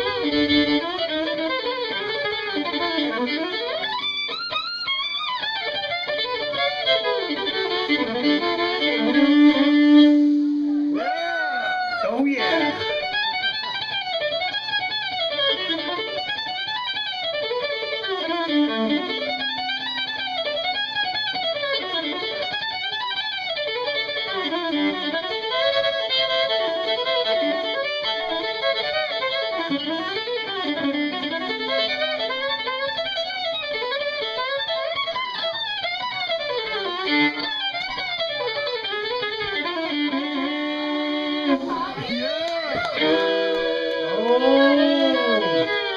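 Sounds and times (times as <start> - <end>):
fiddle playing bluegrass: 0.0 - 45.9.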